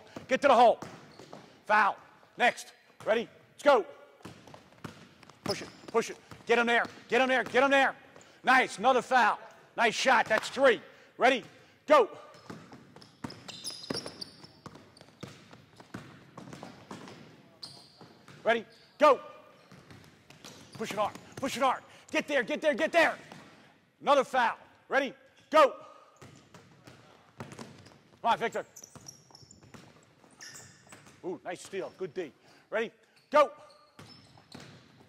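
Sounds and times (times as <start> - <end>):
sneakers squeaking: 0.0 - 2.2, 4.0 - 8.4, 12.1 - 22.0, 26.0 - 35.0
basketball bouncing on hardwood: 0.1 - 1.5, 4.2 - 7.6, 12.4 - 17.3, 29.0 - 30.1.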